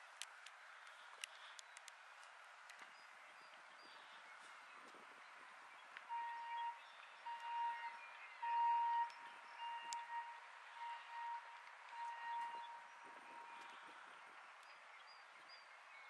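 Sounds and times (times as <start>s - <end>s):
faint outdoor hiss: 0.0s - 16.0s.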